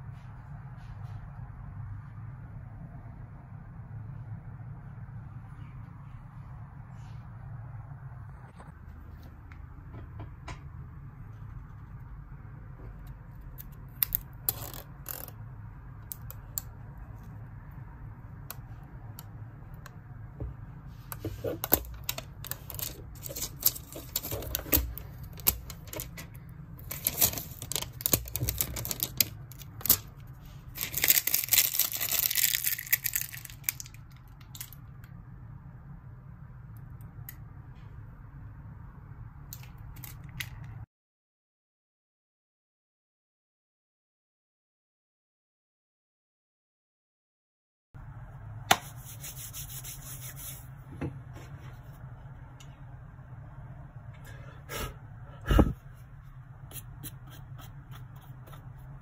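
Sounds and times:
steady low hum: 0.0s - 40.9s, 48.0s - 59.0s
plastic film peeling and crinkling: 21.4s - 26.2s, 26.8s - 34.8s.

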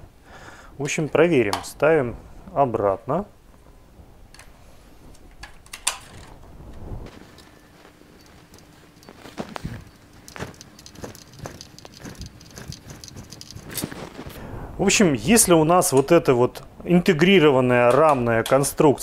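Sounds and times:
plastic clicks and rattles: 8.6s - 14.0s
screwdriver turning screw: 9.8s - 14.0s.

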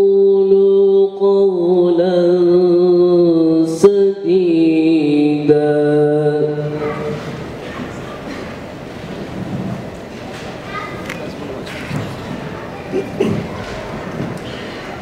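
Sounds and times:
man chanting through amplifier: 0.0s - 7.5s
hubbub of hall: 0.0s - 15.0s.

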